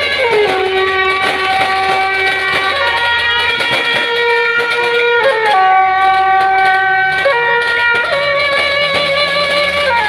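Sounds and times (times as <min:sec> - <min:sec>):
shawms holding a long reedy note: 0:00.0 - 0:10.0.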